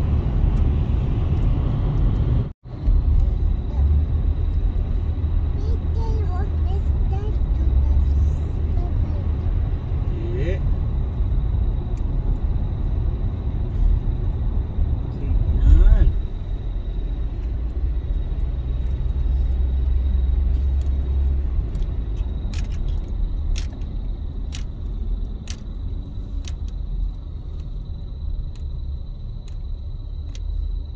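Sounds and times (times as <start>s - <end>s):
car engine rumble: 0.0s - 30.9s
tyres on wet road: 0.0s - 30.9s.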